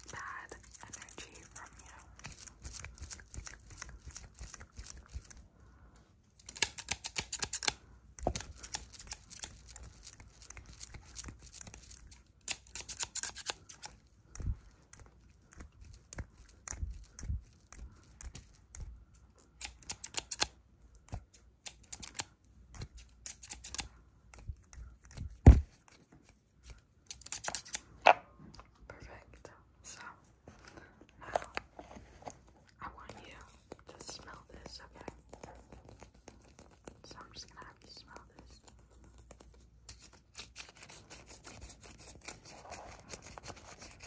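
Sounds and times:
scissors snipping: 6.4 - 26.0, 27.0 - 27.9.

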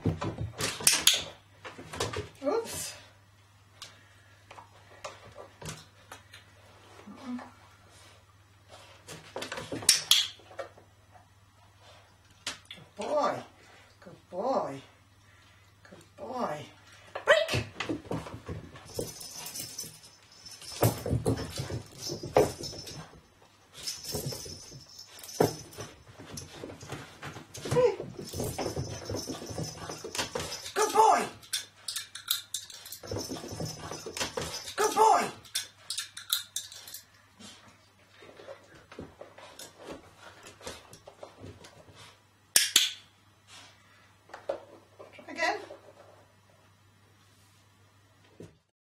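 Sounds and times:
knocks and scuffles on floor: 17.6 - 30.7.

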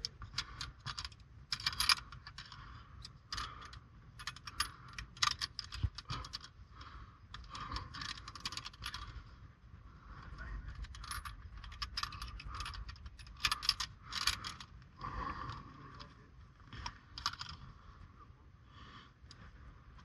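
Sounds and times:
carabiners clinking on metal: 0.0 - 6.6, 7.3 - 9.2, 10.6 - 14.7, 16.7 - 17.7.

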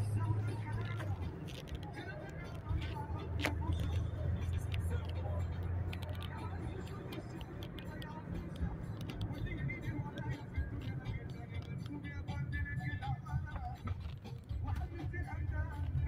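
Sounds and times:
car engine and tyre drone: 0.0 - 16.0.

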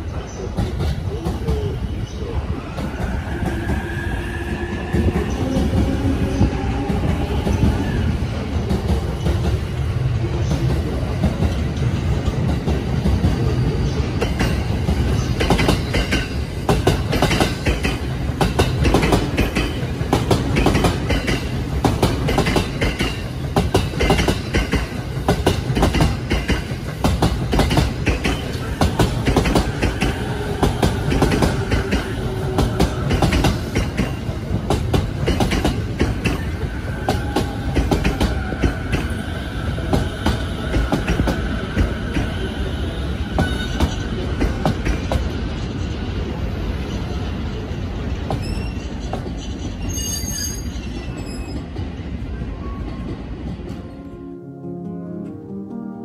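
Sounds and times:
train wheels clattering over rail joints: 14.2 - 39.1
faint high brake squeal: 48.4 - 51.7.

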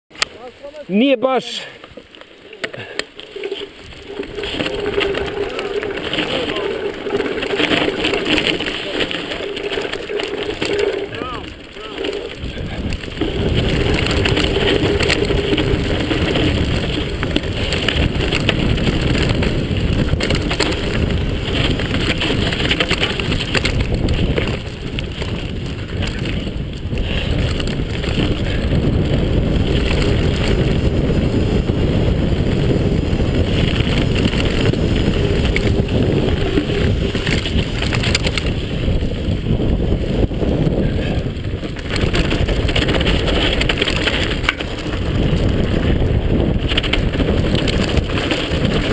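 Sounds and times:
bike rattling on rough trail: 0.1 - 48.9
wind rushing over microphone: 2.7 - 48.9.

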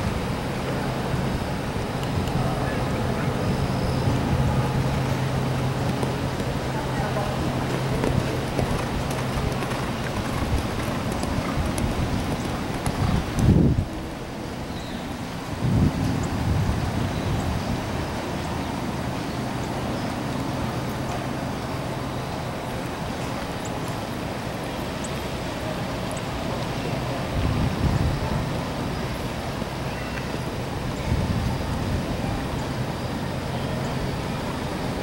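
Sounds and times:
faint voices: 0.3 - 14.6, 20.2 - 35.0.

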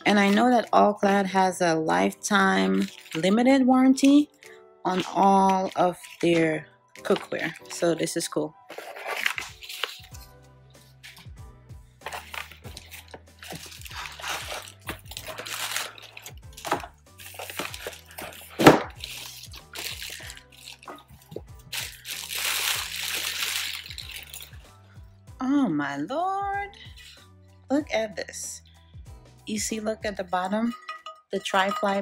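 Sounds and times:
plastic and paper packaging crinkling: 0.0 - 11.3, 12.0 - 24.6
soft background music: 0.0 - 32.0.

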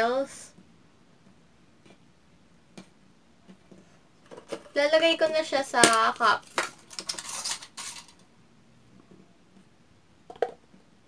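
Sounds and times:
plastic cup clattering: 5.8 - 8.2, 10.3 - 10.6.

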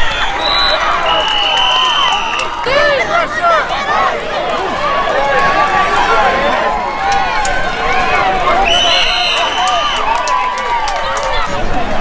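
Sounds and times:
crowd shouting and calling: 0.0 - 12.0
referee's whistle: 0.1 - 2.6, 8.6 - 10.1.

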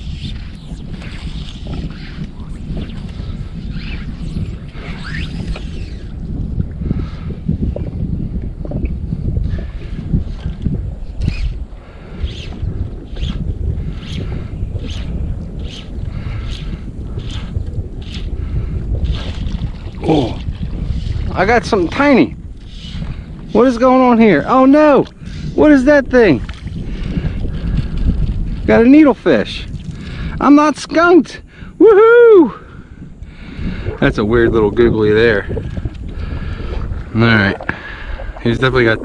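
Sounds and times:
light swishing strokes: 0.0 - 6.2
wind buffeting microphone: 0.0 - 39.0.

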